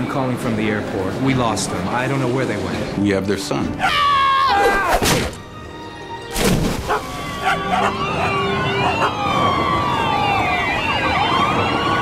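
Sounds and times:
sirens wailing: 0:03.8 - 0:12.0.

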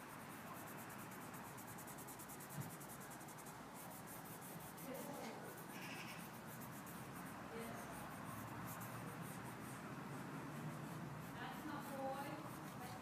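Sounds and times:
pencil scribbling on paper: 0:00.0 - 0:13.0.

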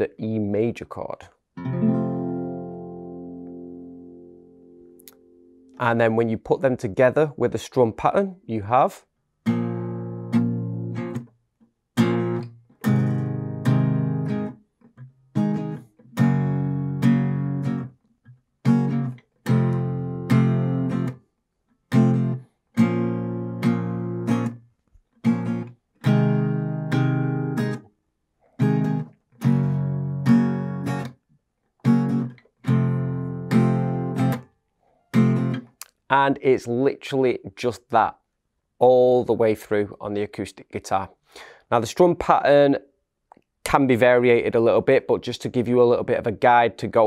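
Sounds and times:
acoustic guitar strumming: 0:01.6 - 0:05.8, 0:09.5 - 0:11.3, 0:12.0 - 0:17.9, 0:18.7 - 0:21.2, 0:21.9 - 0:24.6, 0:25.2 - 0:27.8, 0:28.6 - 0:31.2, 0:31.8 - 0:34.4, 0:35.1 - 0:35.7.

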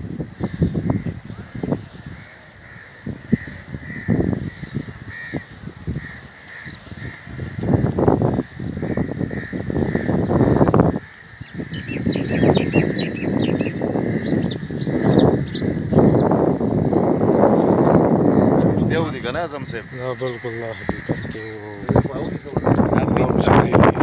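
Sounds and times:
low rumbling microphone noise: 0:00.0 - 0:24.0
small birds chirping: 0:00.4 - 0:16.5
crows cawing: 0:00.4 - 0:24.0.

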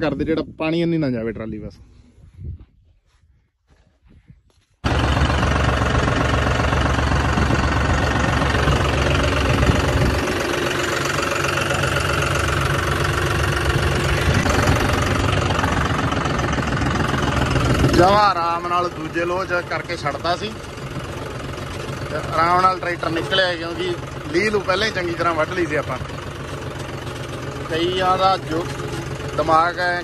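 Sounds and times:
tractor diesel engine running: 0:04.8 - 0:30.0.

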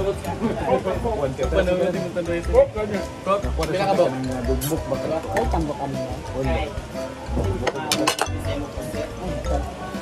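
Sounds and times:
background music: 0:00.0 - 0:10.0
chatter: 0:00.0 - 0:10.0
plates and cutlery clinking: 0:03.5 - 0:05.9, 0:07.3 - 0:08.7.

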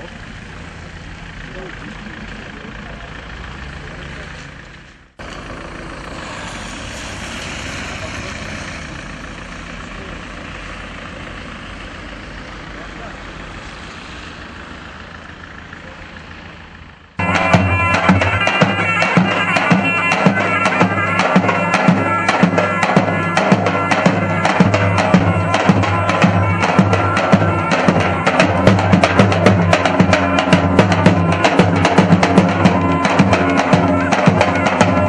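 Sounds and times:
engine drone: 0:00.0 - 0:35.0
tyre hiss on wet road: 0:06.1 - 0:08.9.

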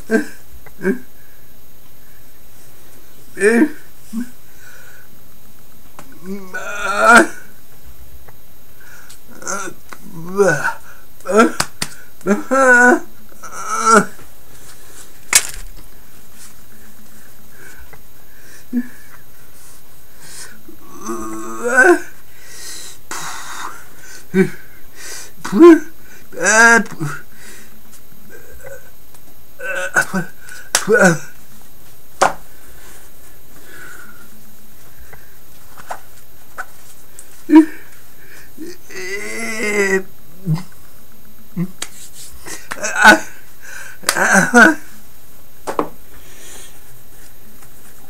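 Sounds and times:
man's wordless vocal cry: 0:03.4 - 0:04.3, 0:06.2 - 0:07.5, 0:09.3 - 0:11.7, 0:20.8 - 0:22.2, 0:25.4 - 0:27.2, 0:29.6 - 0:31.4, 0:38.5 - 0:40.7, 0:42.5 - 0:43.4, 0:44.0 - 0:44.9
man sniffing and breathing: 0:46.1 - 0:46.9.

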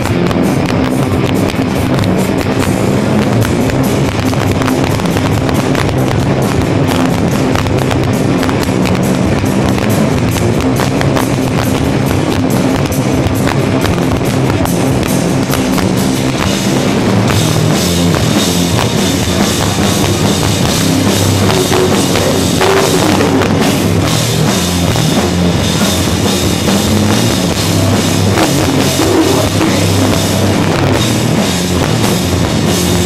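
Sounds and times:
drums and cymbal hits: 0:00.0 - 0:33.0
electric guitars and bass: 0:00.0 - 0:33.0.

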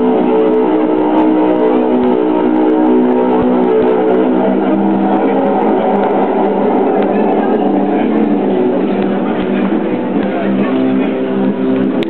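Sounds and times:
guitar music over loudspeakers: 0:00.0 - 0:12.0.

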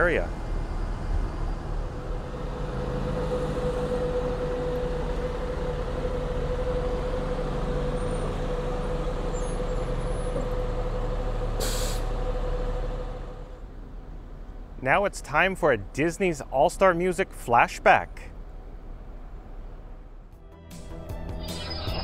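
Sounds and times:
bus engine idling: 0:00.0 - 0:20.4
air brakes hiss: 0:11.6 - 0:12.1.

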